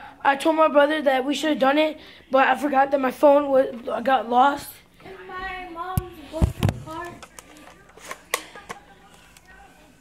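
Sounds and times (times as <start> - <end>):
faint voices: 5.0 - 10.0.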